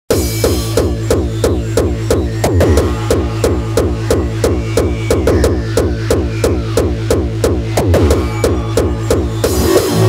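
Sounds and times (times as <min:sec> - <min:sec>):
distorted kick drum: 0:00.1 - 0:10.0
hardcore electronic music: 0:00.1 - 0:10.0
low bass drone: 0:00.6 - 0:10.0.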